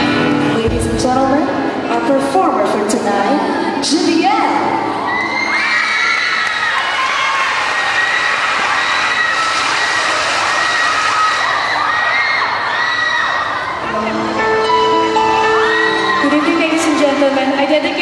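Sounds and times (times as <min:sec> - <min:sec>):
audience cheering and screaming: 0:04.6 - 0:18.0.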